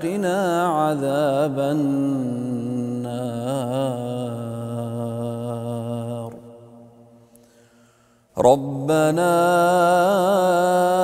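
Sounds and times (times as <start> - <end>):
man reciting melodically: 0.0 - 6.7, 8.3 - 11.0.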